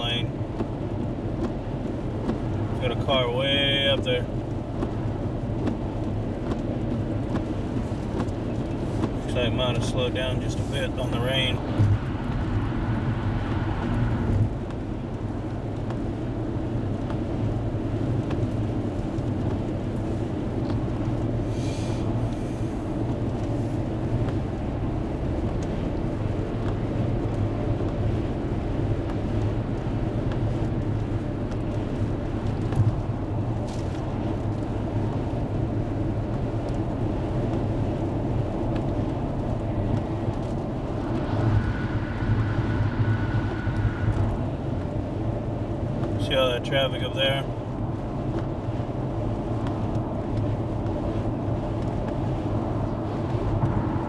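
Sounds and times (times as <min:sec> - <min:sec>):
car driving on wet road: 0:00.0 - 0:54.0.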